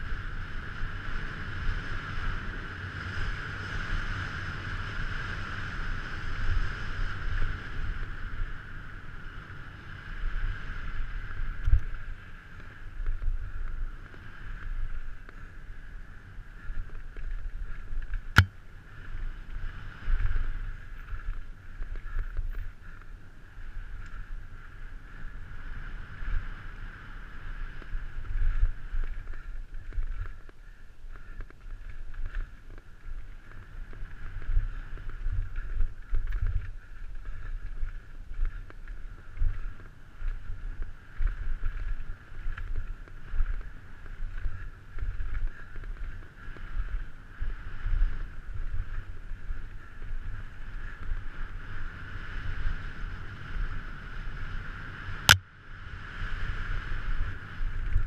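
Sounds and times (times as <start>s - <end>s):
wind rush and low rumble: 0.0s - 58.0s.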